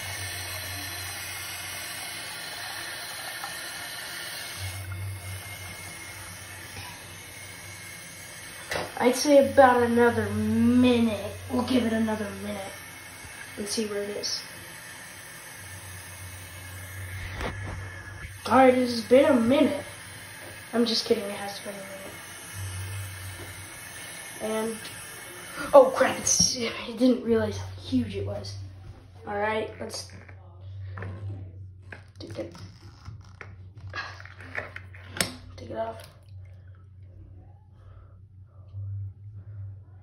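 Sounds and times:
faucet running water: 0.0 - 28.6, 31.9 - 36.7
low hum: 4.4 - 40.0
wet rubber balloon and water shifting: 29.6 - 36.8.

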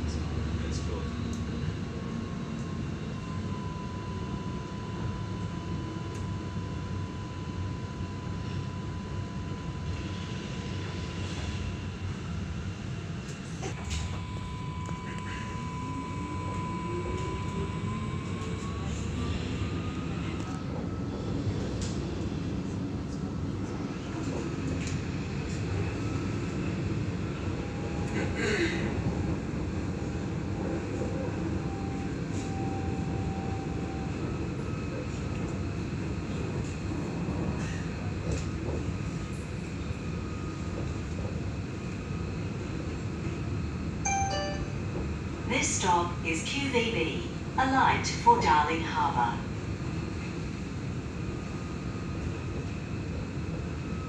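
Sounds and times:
tram wheels rumbling on rail: 9.8 - 44.0.

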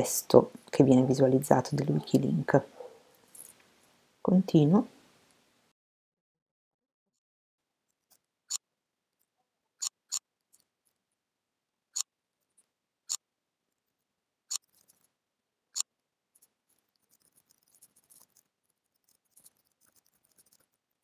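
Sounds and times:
computer mouse and keyboard clicks: 15.8 - 20.8.

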